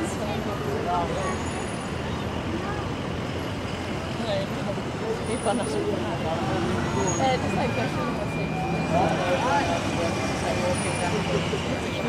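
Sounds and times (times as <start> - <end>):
crowd chatter: 0.0 - 12.0
traffic noise: 0.0 - 12.0.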